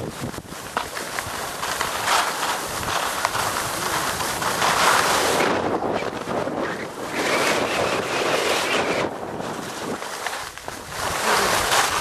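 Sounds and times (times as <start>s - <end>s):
skis scraping on snow: 0.0s - 12.0s
wind rushing over microphone: 0.0s - 12.0s.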